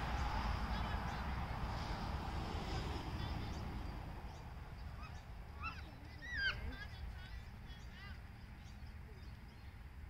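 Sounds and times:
bird calls: 3.4s - 9.8s.

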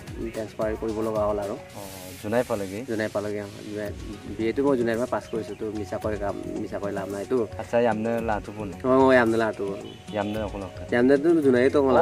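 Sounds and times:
background music: 0.0s - 12.0s
man talking: 0.0s - 12.0s
brief hiss: 1.5s - 4.2s.

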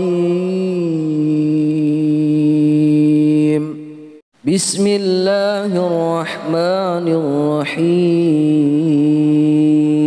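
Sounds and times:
man reciting a long melodic note: 0.0s - 10.0s.

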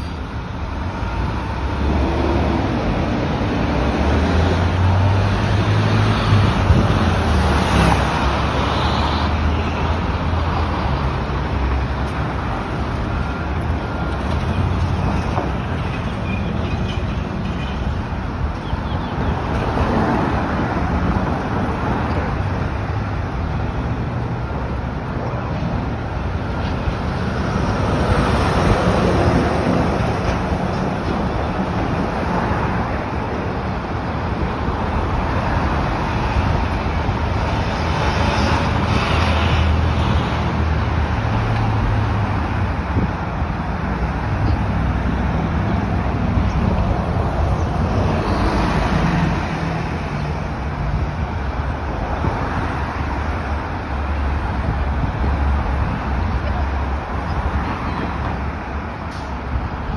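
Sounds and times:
vehicles passing: 0.0s - 59.9s.

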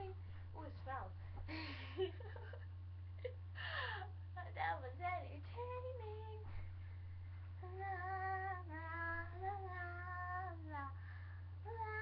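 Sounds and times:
low electrical hum: 0.0s - 12.0s
girl laughing: 1.5s - 3.4s.

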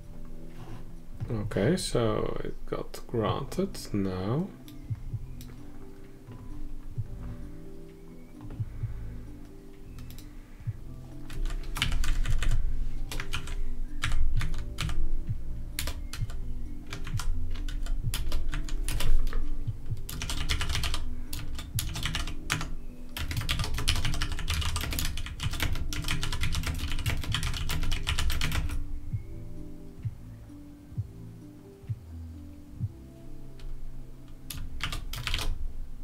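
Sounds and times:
background music: 0.0s - 36.0s
computer keyboard typing: 9.9s - 10.3s, 11.2s - 15.0s, 15.7s - 28.8s, 34.5s - 35.6s.

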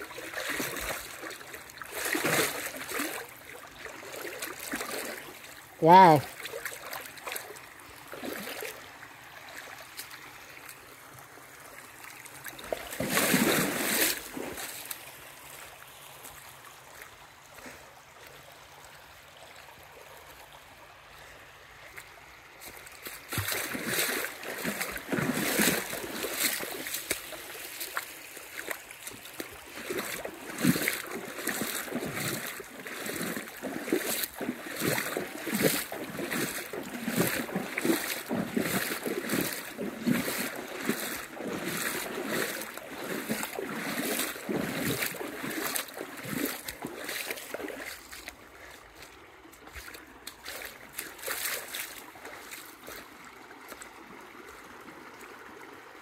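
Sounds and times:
footsteps wading through water: 0.0s - 55.7s
creek water splashing: 0.0s - 56.0s.

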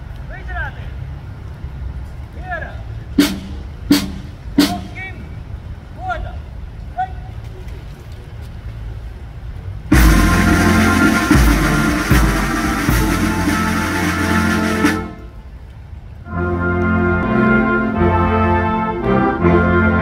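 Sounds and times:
outdoor background rumble: 0.0s - 18.5s
military brass band with drums: 3.2s - 5.2s, 9.9s - 15.5s, 16.3s - 20.0s.

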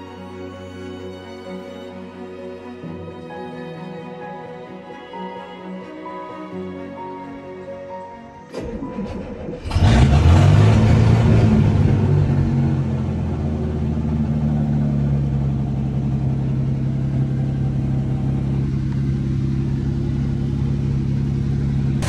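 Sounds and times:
boat engine starting and idling: 8.5s - 22.0s.

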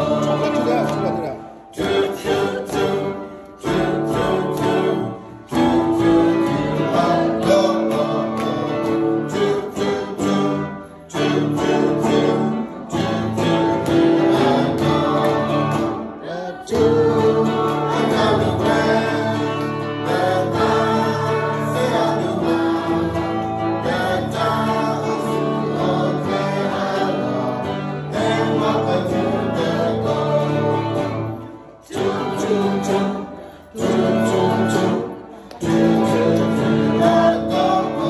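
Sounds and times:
group of adults singing: 0.0s - 38.0s.

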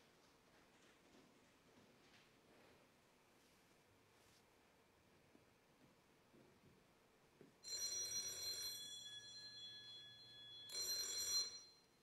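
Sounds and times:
phone ringing: 7.6s - 12.0s.

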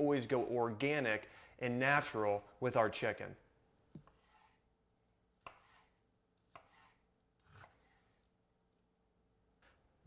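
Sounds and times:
knife slicing chicken: 5.4s - 8.1s.

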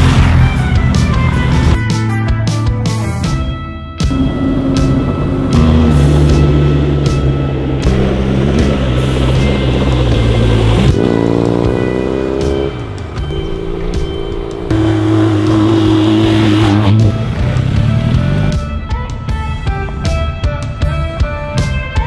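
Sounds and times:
background music with steady beat: 0.0s - 22.0s
motorcycle engine revving: 4.0s - 18.8s.

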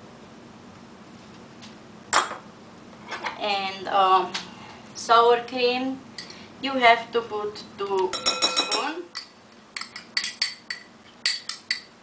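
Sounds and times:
glass clinking on counter: 8.1s - 11.9s.

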